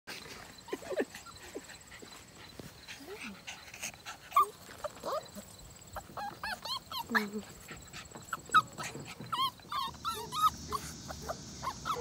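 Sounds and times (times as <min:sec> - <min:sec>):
puppies whining and yelping: 0:00.1 - 0:12.0.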